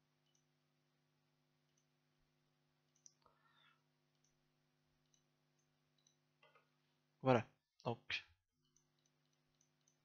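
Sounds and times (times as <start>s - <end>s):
low electrical hum: 0.0s - 7.3s
computer mouse clicks: 2.8s - 3.2s, 4.1s - 4.4s, 5.0s - 6.6s, 8.7s - 10.0s.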